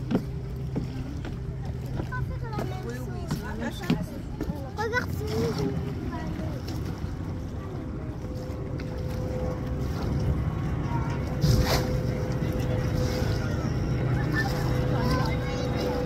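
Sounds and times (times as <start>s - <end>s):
faint voices: 0.0s - 16.0s.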